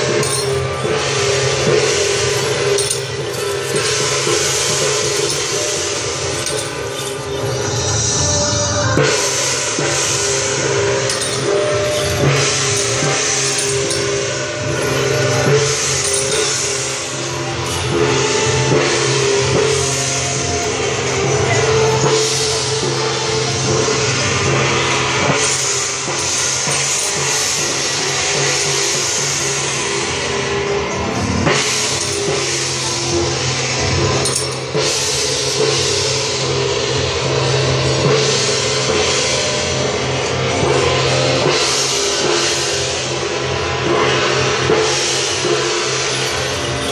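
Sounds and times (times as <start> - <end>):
drum strokes: 0.0 - 8.2, 9.0 - 30.4
gong strokes: 0.0 - 46.9
hand cymbals clashing: 0.0 - 46.9
sustained ringing tones: 0.0 - 46.9.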